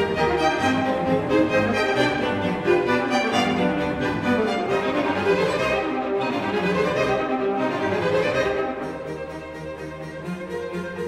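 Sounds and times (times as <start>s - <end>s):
orchestral string music: 0.0s - 11.0s.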